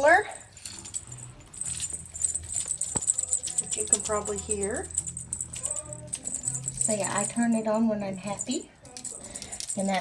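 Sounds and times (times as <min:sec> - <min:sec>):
light jingling: 0:00.0 - 0:10.0.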